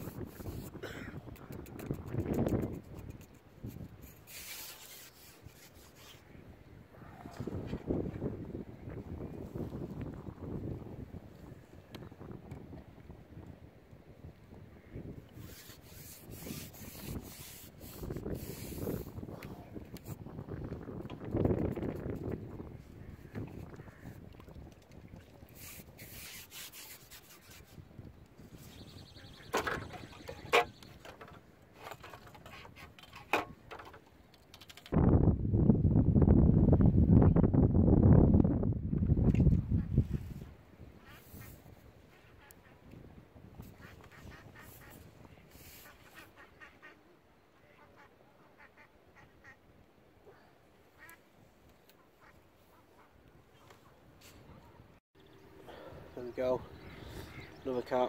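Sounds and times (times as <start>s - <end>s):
wind buffeting microphone: 0.0s - 4.4s, 6.0s - 26.9s, 34.9s - 46.8s.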